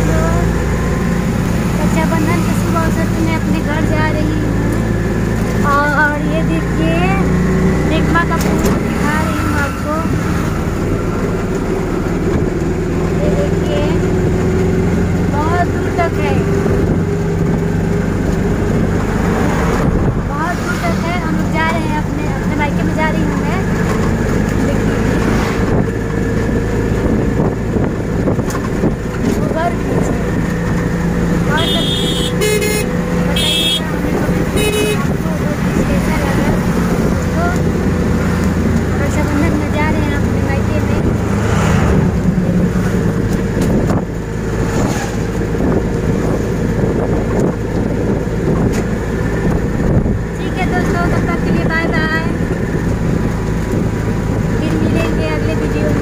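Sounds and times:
road noise: 0.0 - 56.0
vehicle engine running: 0.0 - 56.0
car horn blasts: 31.5 - 35.2.

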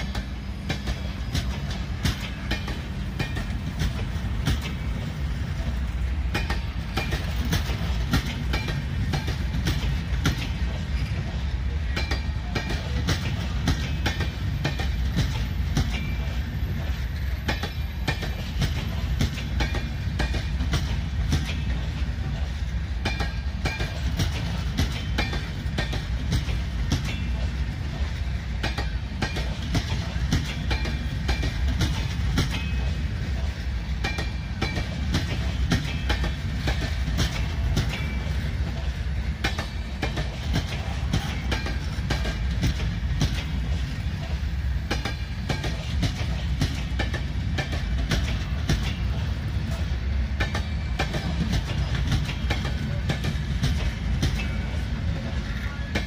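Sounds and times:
low train rumble: 0.0 - 56.0
train wheels clicking over rail joints: 0.0 - 56.0.

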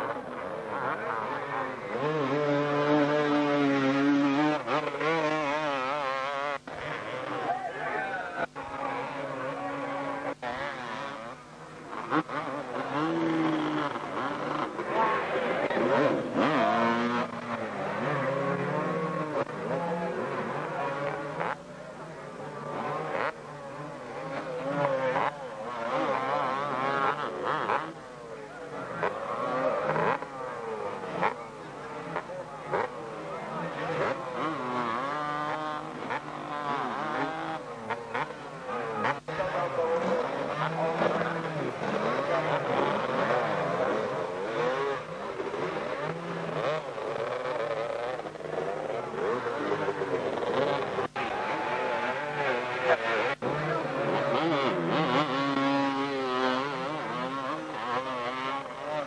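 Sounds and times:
motocross bikes revving: 0.0 - 59.0.

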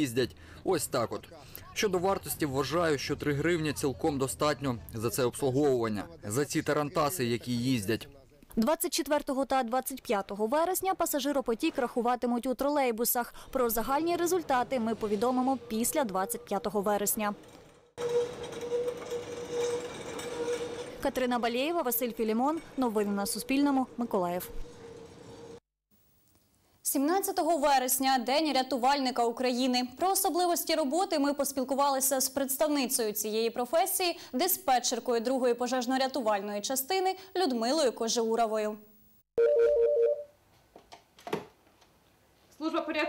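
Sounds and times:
held wheel tone: 17.4 - 21.0
telephone ringing with two-tone warble: 39.4 - 40.3.

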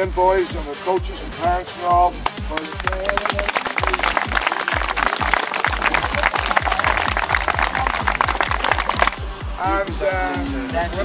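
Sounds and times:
background music with fast beat: 0.0 - 11.0
crowd applauding: 2.6 - 9.3.

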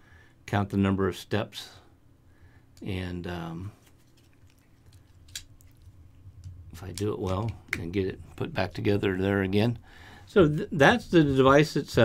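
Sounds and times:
plastic device handling: 3.8 - 7.9.

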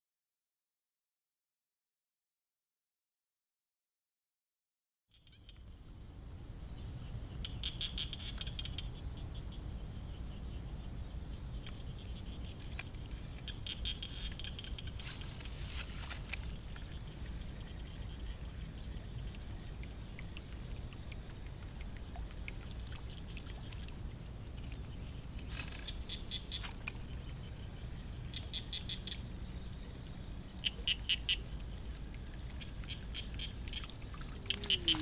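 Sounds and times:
lure splashing and gurgling: 31.8 - 35.0.

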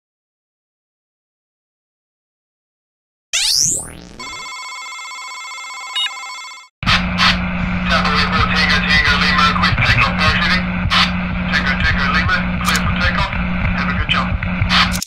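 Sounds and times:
electronic ringing tone: 3.4 - 6.7
radio static crackling: 6.8 - 15.0
steady low hum: 6.9 - 14.9.

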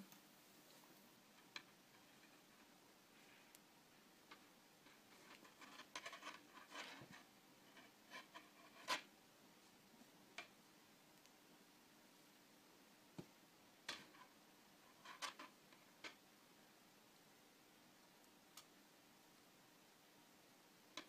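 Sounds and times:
wire clicking and rustling: 0.1 - 9.1, 13.2 - 16.2.

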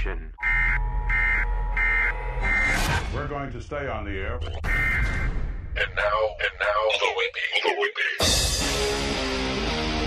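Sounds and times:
electronic warning beeps: 0.4 - 2.9, 4.4 - 5.4.

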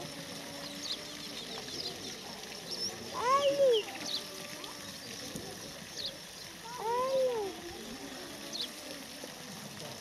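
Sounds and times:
small birds chirping: 0.5 - 7.6, 8.3 - 8.8.

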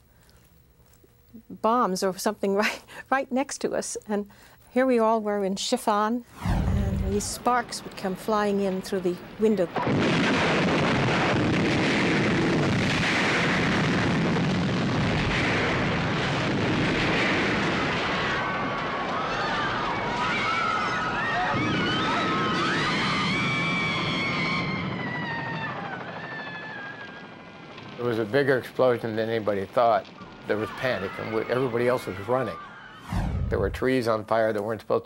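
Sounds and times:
roar of fire: 6.3 - 7.4, 32.6 - 33.8
large explosion: 6.3 - 8.0, 9.2 - 34.0
high wavering screams: 30.2 - 33.4.

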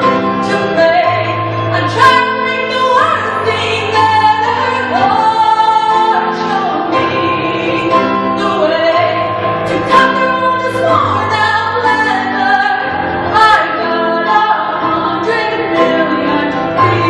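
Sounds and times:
grand piano accompaniment: 0.0 - 17.0
person singing with vibrato: 0.0 - 17.0.

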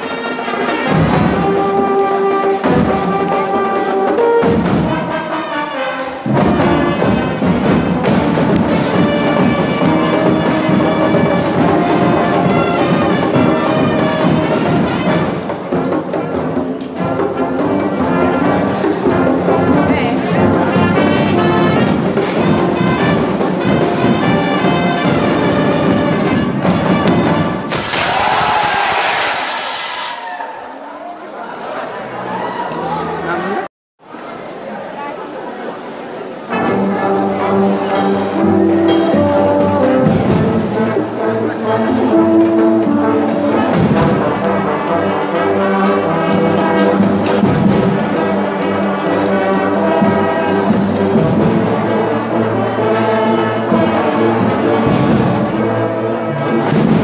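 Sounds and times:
marching band playing: 0.0 - 30.3, 36.4 - 57.0
loud hiss-like noise burst: 27.6 - 30.4.

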